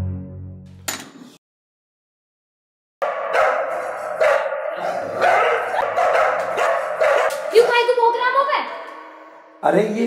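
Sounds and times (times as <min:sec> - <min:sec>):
dog barking: 0:03.0 - 0:08.0.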